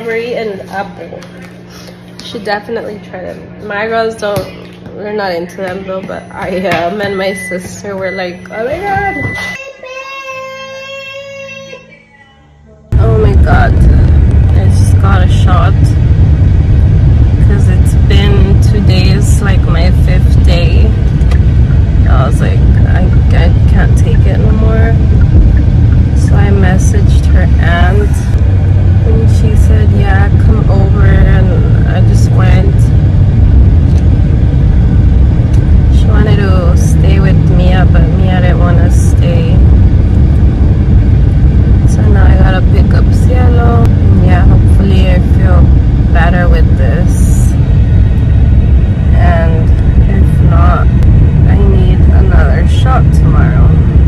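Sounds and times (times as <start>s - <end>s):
woman talking: 0.0s - 9.6s, 12.9s - 16.0s, 17.4s - 21.1s, 22.0s - 25.2s, 26.1s - 28.4s, 29.0s - 33.0s, 35.8s - 39.8s, 41.8s - 47.6s, 49.0s - 54.0s
car interior rumble: 12.9s - 54.0s.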